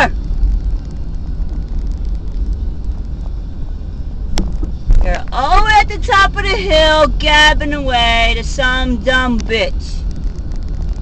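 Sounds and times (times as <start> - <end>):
car driving rumble inside cabin: 0.0 - 11.0
thump: 4.3 - 5.0.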